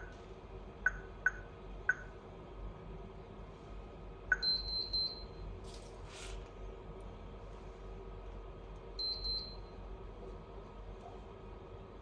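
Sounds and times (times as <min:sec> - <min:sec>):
touchscreen key-press beep: 0:04.3 - 0:05.3, 0:09.0 - 0:09.6
high-pitched buzzer beeps: 0:04.3 - 0:05.4, 0:09.0 - 0:09.7.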